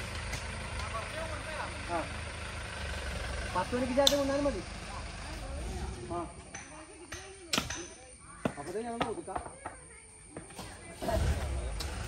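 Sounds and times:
truck engine running at low revs: 0.0 - 6.5, 10.9 - 12.0.

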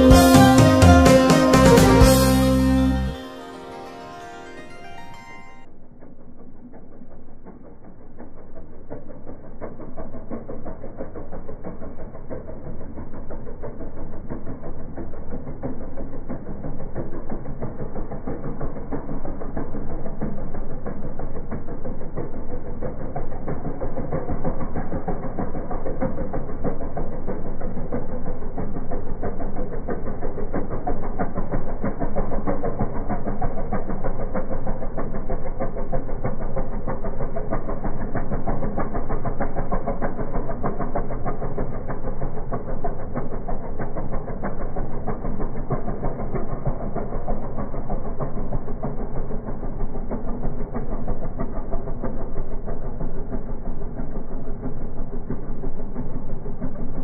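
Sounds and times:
boat engine droning: 0.0 - 57.0.

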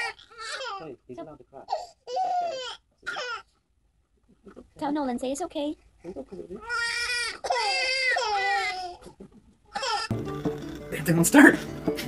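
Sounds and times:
small child crying: 2.0 - 3.4, 6.7 - 9.1, 9.7 - 10.1.

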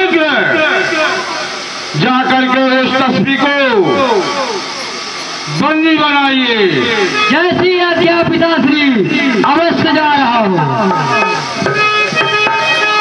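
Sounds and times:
hiss: 3.4 - 7.4.

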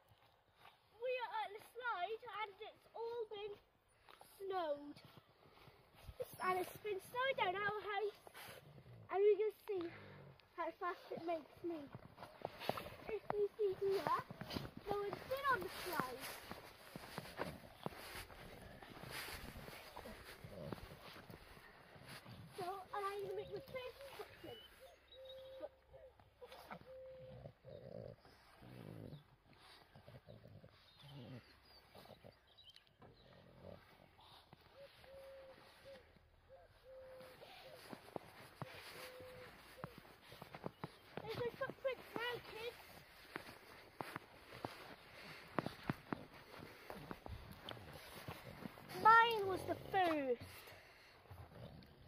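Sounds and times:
child humming and exclaiming: 1.0 - 5.1, 6.1 - 8.2, 12.7 - 18.3, 22.0 - 27.4, 37.0 - 44.8, 48.9 - 50.5.

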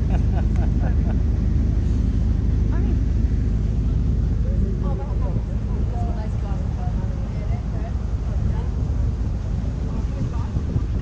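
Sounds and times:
boat engine rumble: 0.0 - 11.0
wind buffeting microphone: 0.0 - 11.0.

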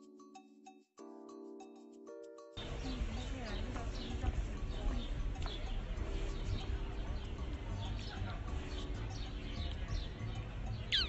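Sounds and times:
small birds chirping: 2.6 - 11.0.

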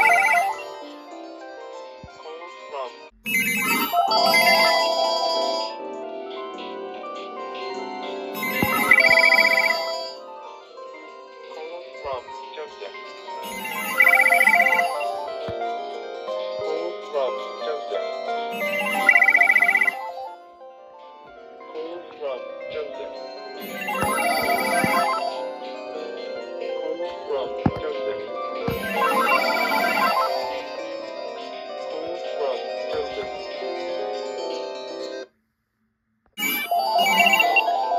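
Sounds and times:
cordless phones ringing: 0.0 - 0.7, 8.4 - 10.2, 13.5 - 15.3, 18.6 - 20.2, 23.6 - 25.4, 28.7 - 30.5, 36.4 - 37.8
short high beeps: 8.4 - 10.0, 13.5 - 15.2, 18.6 - 20.2, 23.6 - 25.3, 36.4 - 37.6.

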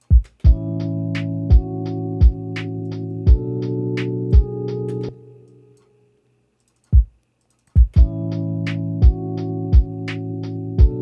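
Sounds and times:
lo-fi beat with chords: 0.0 - 6.1, 6.7 - 11.0
kick drum hits: 7.8 - 8.2.

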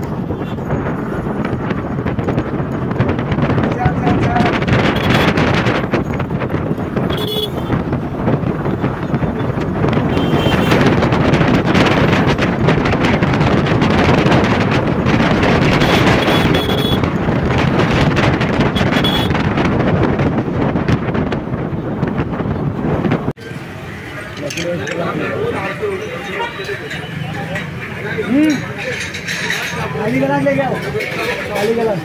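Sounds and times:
wind rushing over microphone: 0.0 - 23.8
scooter engine and road noise: 0.0 - 32.0.

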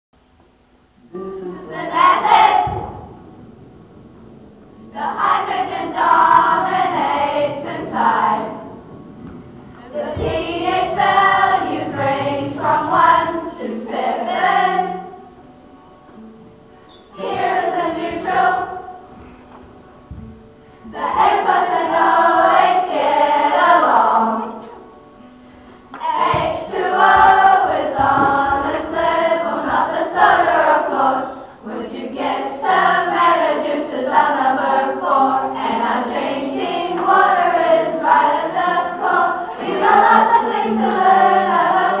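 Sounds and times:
young voices singing together: 1.0 - 15.4, 16.9 - 24.9, 25.6 - 42.0.

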